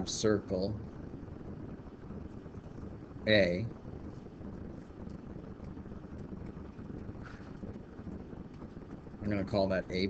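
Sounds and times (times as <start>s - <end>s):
low background hum and hiss: 0.0s - 10.0s.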